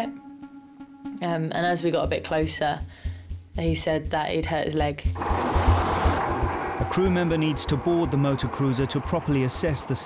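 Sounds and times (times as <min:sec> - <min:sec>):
music with low pulsing beat: 0:00.1 - 0:10.0
rushing wind and sea: 0:05.2 - 0:07.0.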